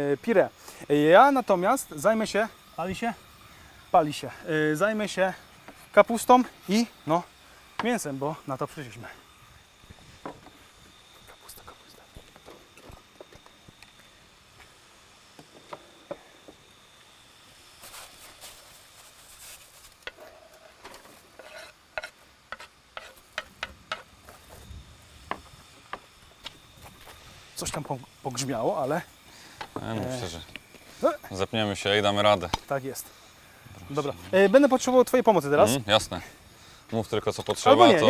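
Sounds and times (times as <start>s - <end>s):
knife and spatula scraping pan: 20.0s - 24.1s.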